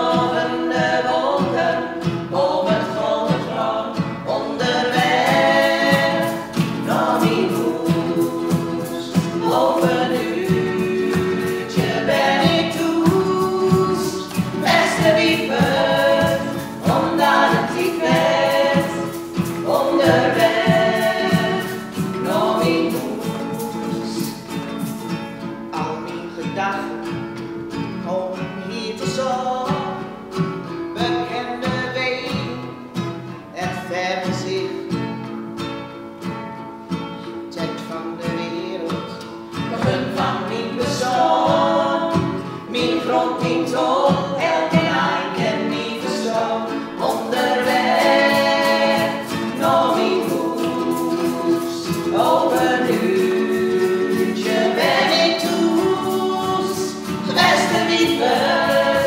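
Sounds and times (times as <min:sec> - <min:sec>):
women singing in harmony: 0:00.0 - 0:24.6, 0:39.7 - 0:59.0
strummed ukulele: 0:00.0 - 0:59.0.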